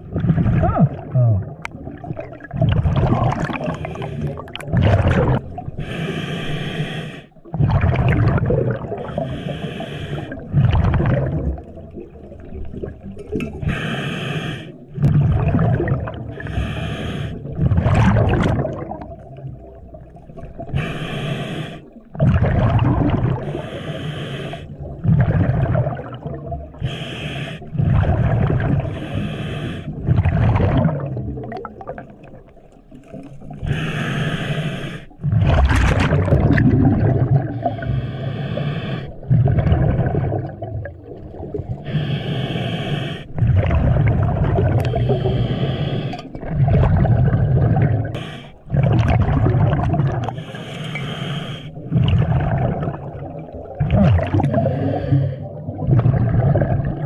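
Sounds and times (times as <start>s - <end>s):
gurgling exhaled bubbles: 0.0s - 6.0s, 7.4s - 9.5s, 10.1s - 13.8s, 14.8s - 21.1s, 21.8s - 23.8s, 24.5s - 27.0s, 27.6s - 34.2s, 35.1s - 42.4s, 43.2s - 50.7s, 51.6s - 57.0s
hissing regulator inhalation: 5.8s - 7.3s, 9.1s - 10.4s, 16.4s - 17.4s, 20.8s - 21.9s, 23.4s - 24.7s, 26.8s - 27.7s, 28.9s - 29.9s, 33.7s - 35.2s, 37.6s - 39.2s, 41.8s - 43.4s, 44.8s - 46.3s, 48.1s - 48.6s, 50.2s - 51.9s.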